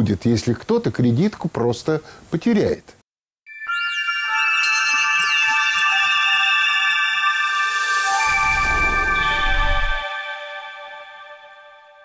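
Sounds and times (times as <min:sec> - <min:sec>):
synthesizer tones: 0:05.0 - 0:11.8
synthesizer pitch sweeps: 0:05.5 - 0:12.0.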